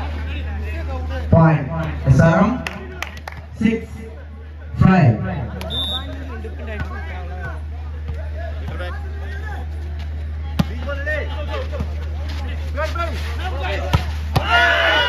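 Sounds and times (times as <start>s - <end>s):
crowd chattering and calling: 0.0s - 15.0s.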